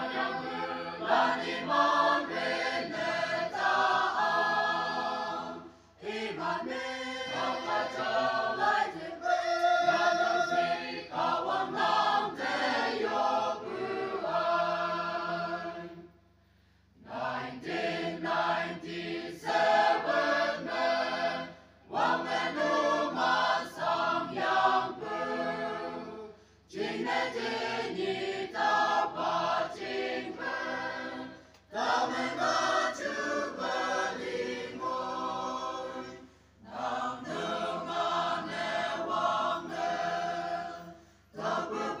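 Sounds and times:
choir singing: 0:00.0 - 0:16.2, 0:17.0 - 0:42.0.

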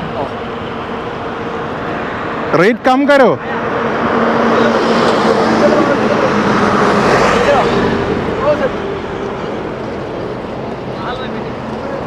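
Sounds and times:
highway traffic passing: 0:00.0 - 0:12.0.

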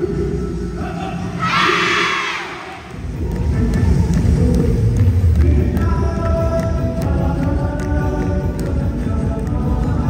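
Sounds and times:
background music: 0:00.0 - 0:10.0
children shouting together: 0:01.4 - 0:02.8.

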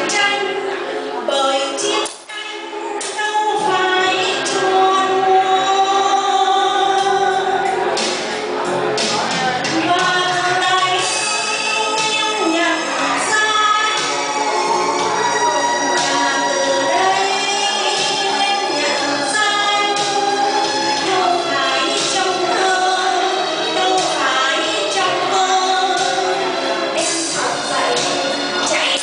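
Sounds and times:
woman singing into microphone: 0:00.0 - 0:08.0, 0:09.3 - 0:29.0
backing music: 0:00.0 - 0:29.0.

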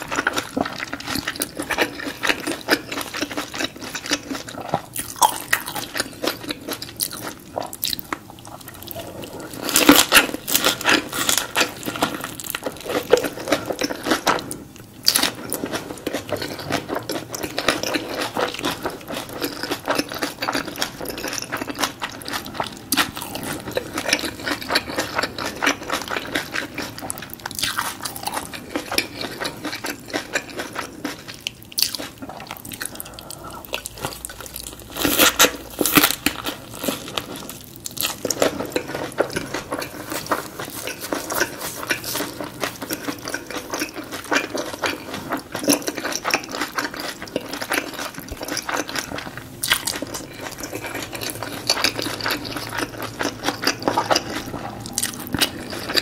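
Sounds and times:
crunchy wet chewing: 0:00.0 - 0:56.0.

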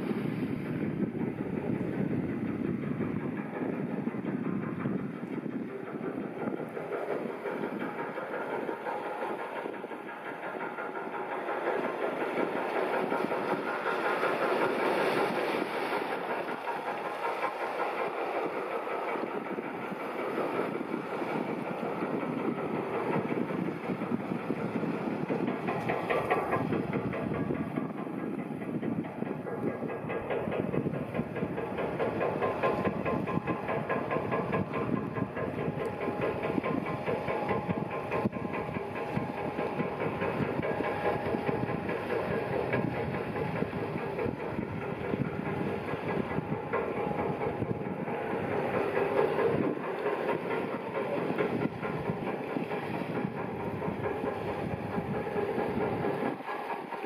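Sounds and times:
ferry engines rumbling: 0:00.0 - 0:57.0.

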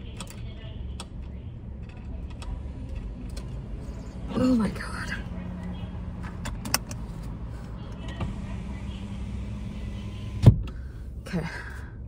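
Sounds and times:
car engine hum inside cabin: 0:00.0 - 0:12.0.

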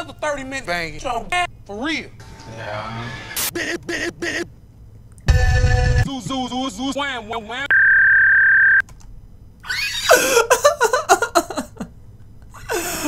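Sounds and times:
censor bleep tone: 0:07.7 - 0:08.8
choppy laughter: 0:10.1 - 0:11.9.

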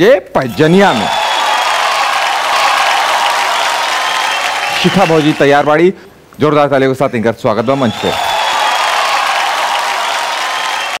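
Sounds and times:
audience applauding: 0:00.7 - 0:05.7, 0:07.7 - 0:11.0.

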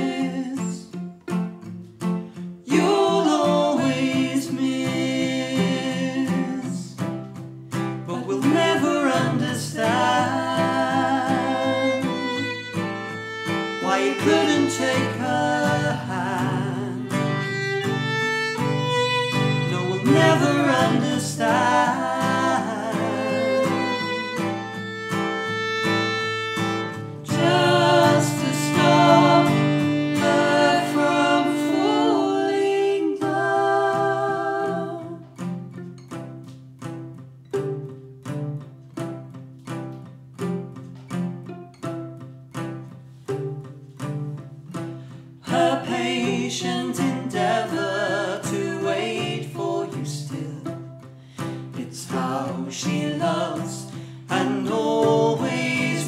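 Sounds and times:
man singing: 0:00.0 - 0:01.0, 0:02.7 - 0:07.1, 0:08.1 - 0:12.5, 0:13.7 - 0:17.5, 0:19.4 - 0:24.3, 0:27.2 - 0:35.2, 0:45.4 - 0:50.9, 0:51.7 - 0:56.0
acoustic guitar chords: 0:00.0 - 0:56.0
fiddle: 0:08.5 - 0:35.0.

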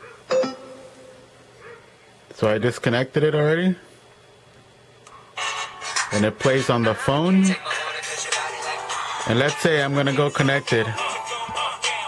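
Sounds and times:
music from phone speaker: 0:05.4 - 0:12.0.

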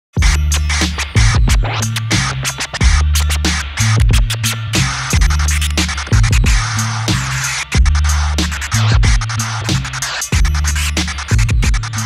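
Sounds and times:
beat with deep bass: 0:00.2 - 0:12.0
record scratching: 0:00.2 - 0:12.0.

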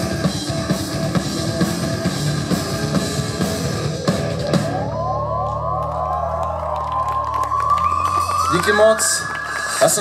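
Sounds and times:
live rock band playing: 0:00.0 - 0:05.1.

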